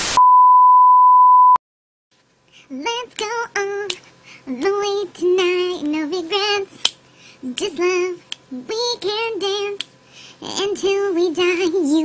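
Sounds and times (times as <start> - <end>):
tv static hiss: 0.0 - 0.2
test-tone beep: 0.0 - 1.6.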